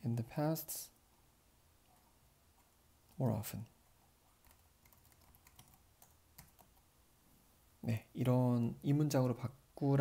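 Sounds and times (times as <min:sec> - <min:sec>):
keyboard typing: 0:04.4 - 0:06.9.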